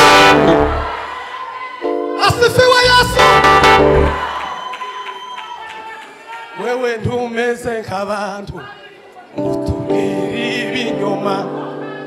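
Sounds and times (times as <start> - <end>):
gospel band chords: 0.0 - 4.8, 9.4 - 12.0.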